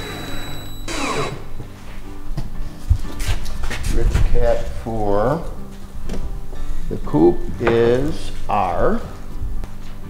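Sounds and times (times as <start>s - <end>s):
cordless drill driving a screw: 0.0s - 1.4s
background music: 0.0s - 10.0s.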